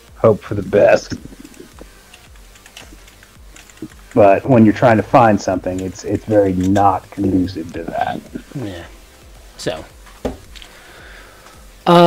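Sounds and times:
typing on computer keyboard: 2.1s - 4.0s.

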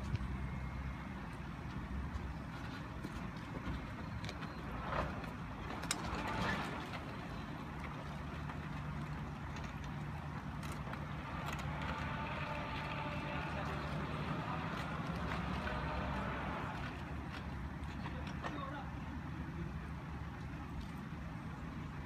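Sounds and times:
engines idling: 0.0s - 22.0s.

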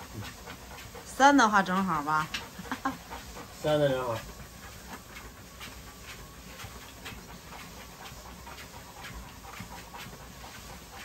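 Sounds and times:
dog panting: 0.0s - 11.0s
paws padding on treadmill belt: 0.0s - 11.0s.

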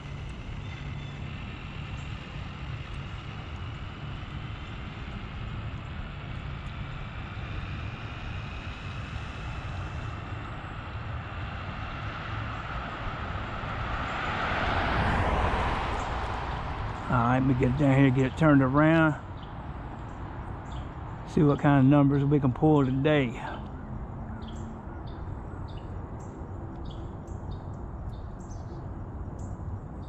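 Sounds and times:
car driving past: 10.8s - 19.2s.

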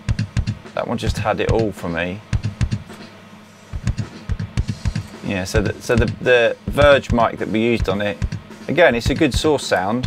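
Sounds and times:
kick drum: 0.0s - 2.9s, 3.7s - 9.6s
rock drum kit: 0.0s - 9.8s.

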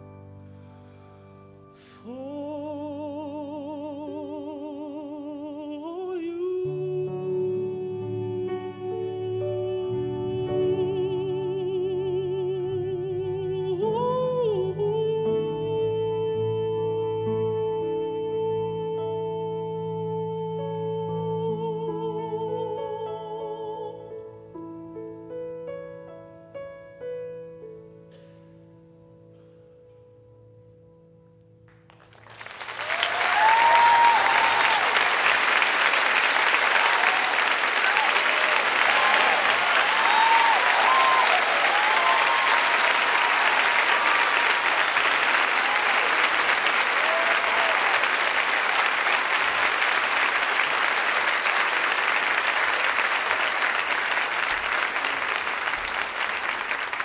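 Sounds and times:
audience applause: 31.9s - 57.0s
cheers and whoops: 32.6s - 49.3s.

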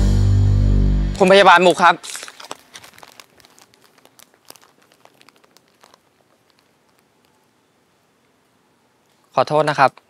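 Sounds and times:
faint crinkling clicks: 2.0s - 7.5s.

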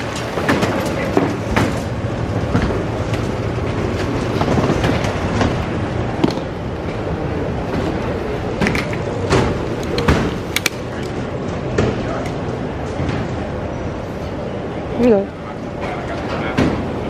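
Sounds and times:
baggage carousel rumbling: 0.0s - 17.0s.

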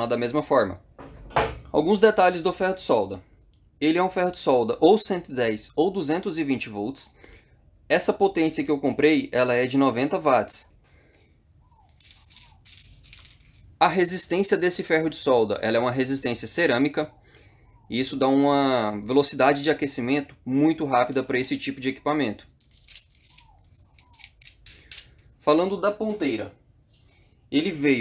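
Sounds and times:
metallic clinks and scraping: 11.7s - 14.3s, 22.5s - 25.3s.

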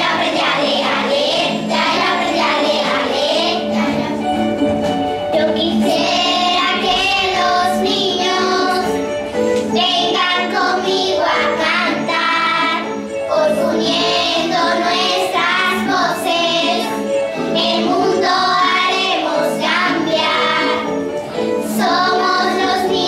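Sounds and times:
children singing in chorus: 0.0s - 4.3s, 5.4s - 23.0s.

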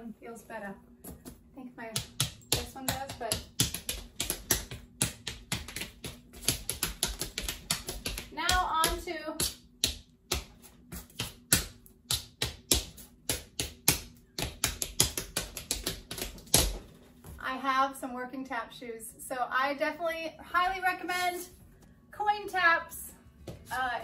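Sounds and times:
tap shoes clicking on board: 2.0s - 10.5s, 11.2s - 16.8s.

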